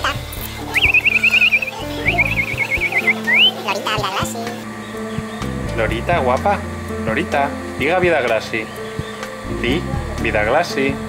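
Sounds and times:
background music: 0.0s - 11.0s
parrot whistling and trilling: 0.6s - 3.8s.

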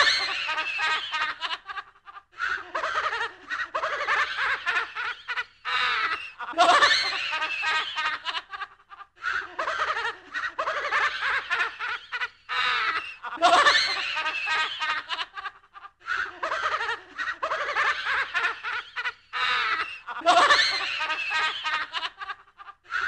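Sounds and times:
spooky horror laugh: 0.0s - 23.0s.

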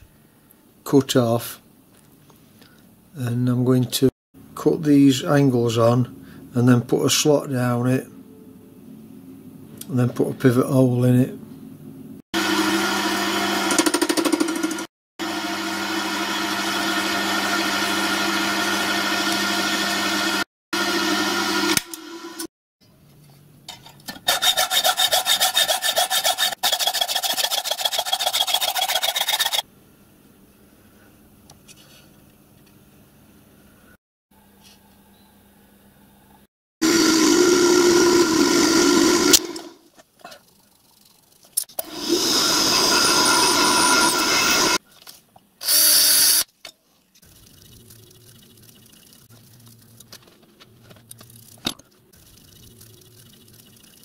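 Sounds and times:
hacksaw strokes: 24.2s - 29.6s
milling machine cutting iron: 36.8s - 39.8s, 41.8s - 44.8s
drill into metal: 41.8s - 44.8s, 45.6s - 46.5s.

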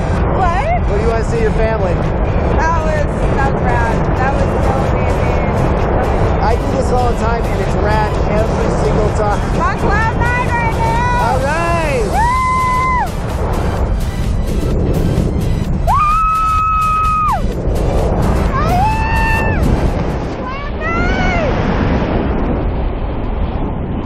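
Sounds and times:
wind on microphone: 0.0s - 24.0s
woman screaming and whooping: 12.1s - 13.1s, 15.9s - 17.4s, 18.5s - 19.7s.

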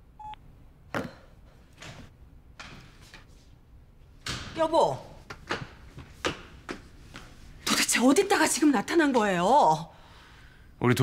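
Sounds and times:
phone beep: 0.2s - 0.4s.

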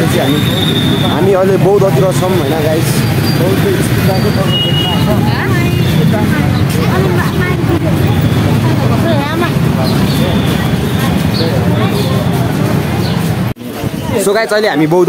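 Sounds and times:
low rumble of traffic: 0.0s - 15.0s
people talking: 0.0s - 15.0s.

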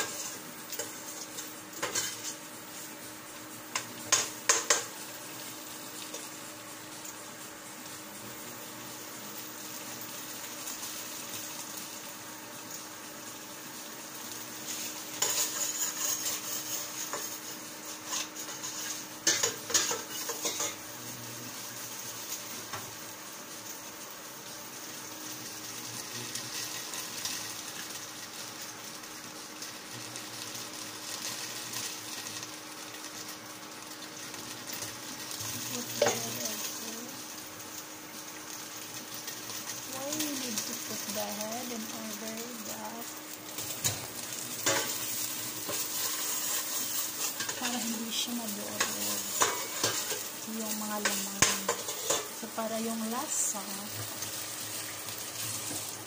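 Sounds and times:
paste sizzling in a pot: 0.0s - 56.0s.

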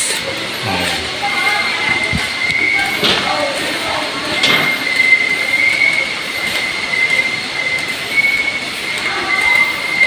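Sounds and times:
high-pitched whine: 0.0s - 5.6s.

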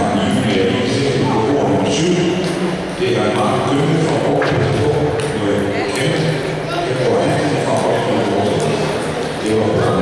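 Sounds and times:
chatter of voices in hall: 0.0s - 10.0s.

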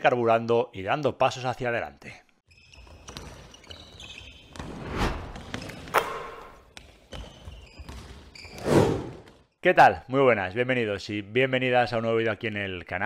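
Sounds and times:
whooshes: 4.6s - 6.6s, 8.6s - 9.2s.

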